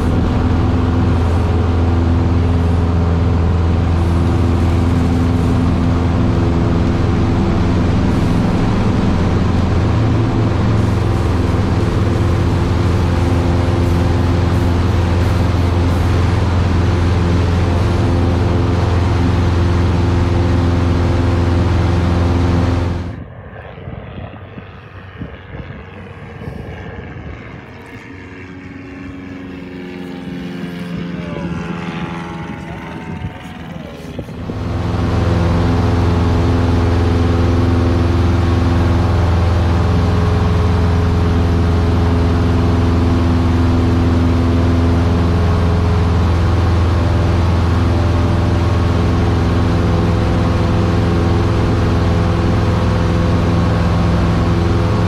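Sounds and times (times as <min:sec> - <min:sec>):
airplane engine and propeller drone: 0:00.0 - 0:55.0
dull wavering sound: 0:00.0 - 0:55.0.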